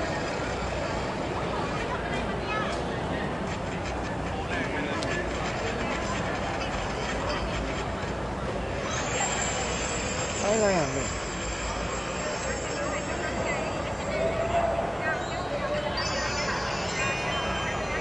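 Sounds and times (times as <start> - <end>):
murmur of many voices: 0.0 - 18.0.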